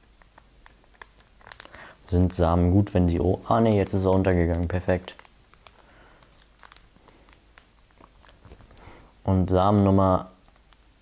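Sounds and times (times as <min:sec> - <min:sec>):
fingers handling seed packet: 0:00.0 - 0:09.0, 0:09.7 - 0:10.9.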